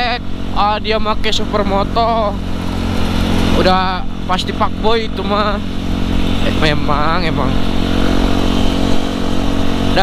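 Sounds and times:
motorcycle engine cruising: 0.0s - 10.0s
road and wind noise: 0.0s - 10.0s.

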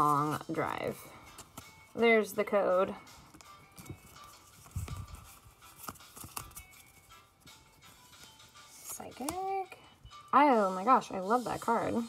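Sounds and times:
trading cards clicking and rustling: 0.0s - 2.0s, 3.1s - 9.6s.

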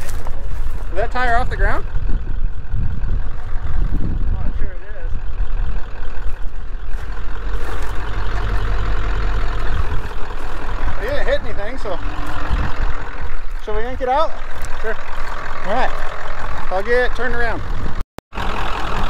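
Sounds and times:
vehicle engine idling: 0.0s - 19.0s.

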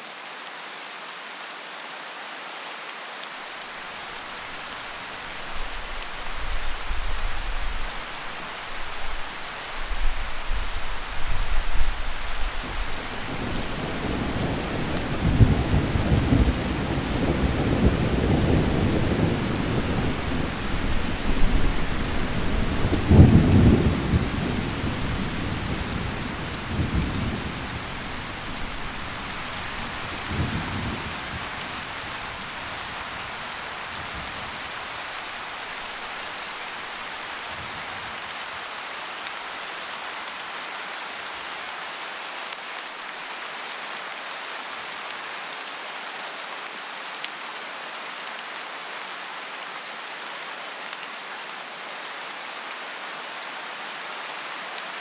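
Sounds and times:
steady rain: 0.0s - 55.0s.

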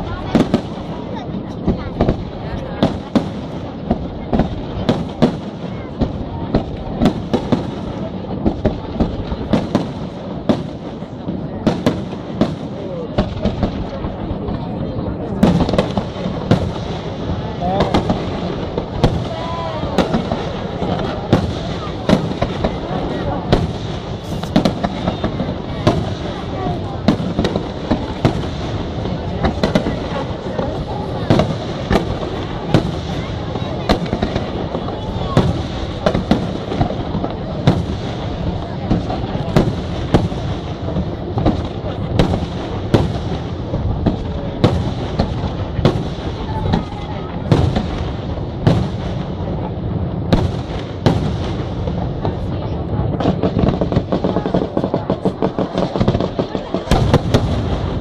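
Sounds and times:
firework bangs: 0.0s - 58.0s
firework crackle: 0.0s - 58.0s.

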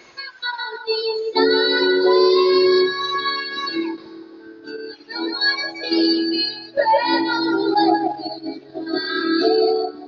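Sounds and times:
girl singing into a microphone: 0.0s - 10.0s.

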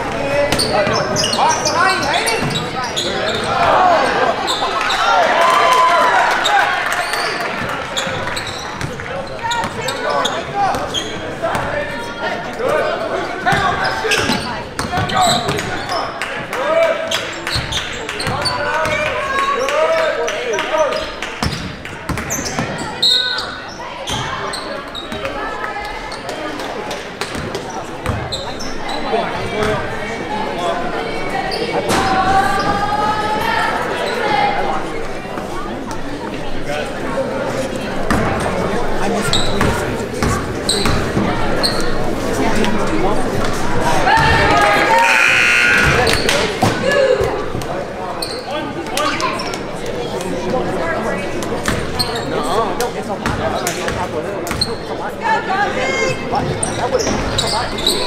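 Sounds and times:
people shouting in echoing gym: 44.0s - 47.4s.

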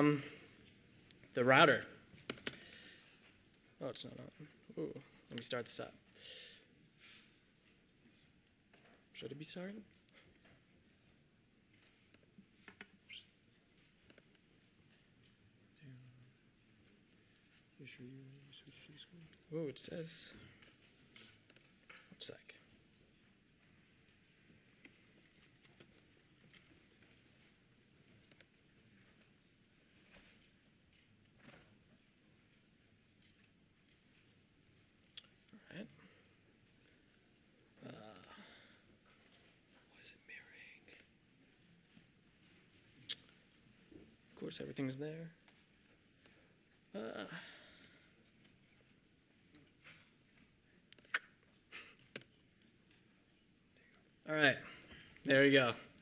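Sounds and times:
faint whispered word: 22.0s - 22.8s, 37.7s - 42.0s.

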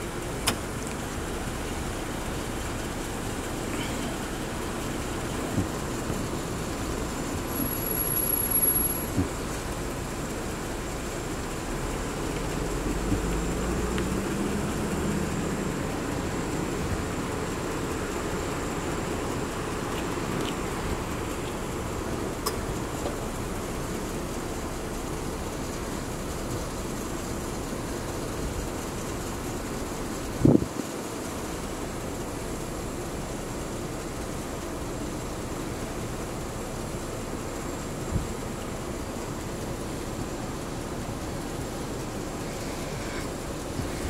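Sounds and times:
street noise: 0.0s - 44.0s
vehicle engine rumble: 0.0s - 44.0s.

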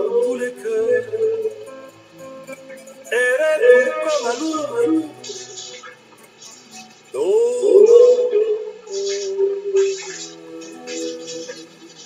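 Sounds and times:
person singing a hymn: 0.0s - 1.8s, 3.1s - 5.5s, 7.2s - 11.9s
soft sustained accompaniment: 0.0s - 12.0s.

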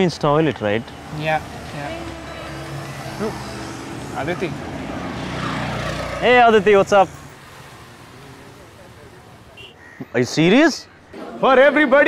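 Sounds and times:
motor vehicle engine hum: 0.0s - 9.7s.

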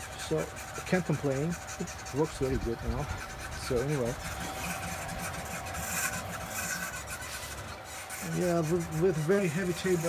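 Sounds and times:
steady hum: 0.0s - 10.0s
stepper motors whirring: 0.0s - 10.0s.

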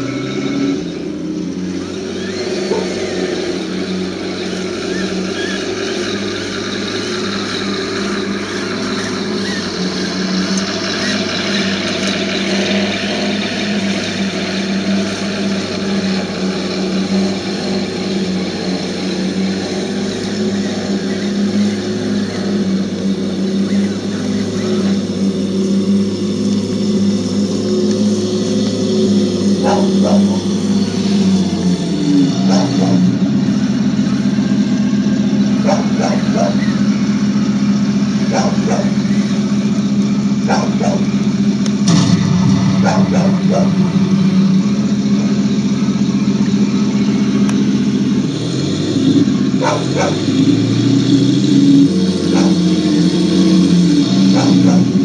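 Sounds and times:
simulated tank engine running: 0.0s - 55.0s.

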